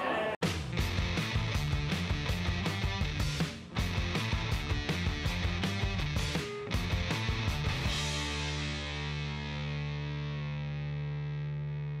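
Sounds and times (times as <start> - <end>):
distorted electric guitar chord: 3.9 - 12.0.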